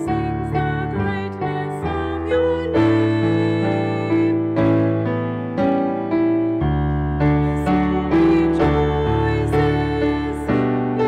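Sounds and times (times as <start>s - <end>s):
keyboard chords: 0.0s - 11.0s.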